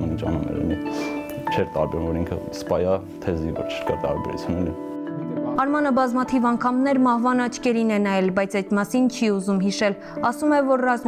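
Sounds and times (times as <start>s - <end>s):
soft background music: 0.0s - 11.0s
man talking: 1.4s - 5.6s.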